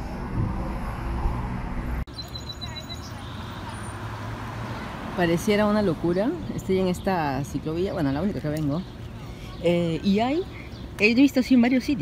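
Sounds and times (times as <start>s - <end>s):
outdoor ambience: 0.0s - 12.0s
road traffic rumble: 0.0s - 12.0s.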